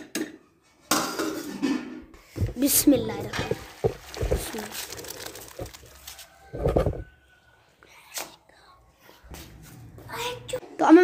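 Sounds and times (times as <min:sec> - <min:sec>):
noisy handling of kitchenware: 0:00.0 - 0:02.5.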